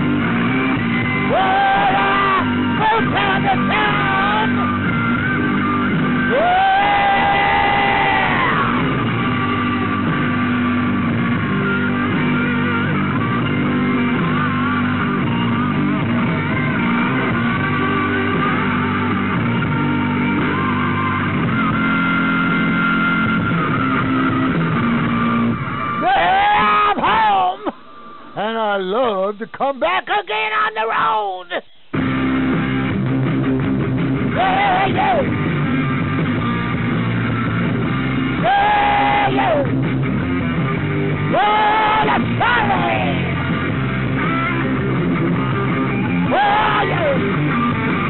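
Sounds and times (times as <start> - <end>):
instrumental rock music: 0.0 - 29.5, 31.8 - 48.0.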